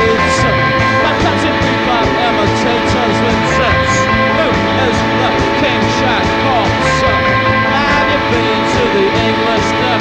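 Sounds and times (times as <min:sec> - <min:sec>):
drums and cymbals beat: 0:00.0 - 0:09.7
sliding bending guitar notes: 0:00.0 - 0:10.0.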